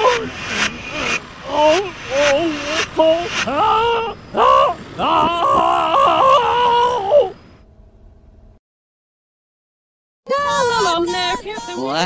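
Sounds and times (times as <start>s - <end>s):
distorted cartoon voice crying: 0.9s - 7.3s.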